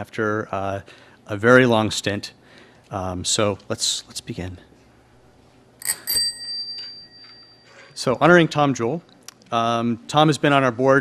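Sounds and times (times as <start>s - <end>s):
small bell ringing: 5.8s - 8.4s.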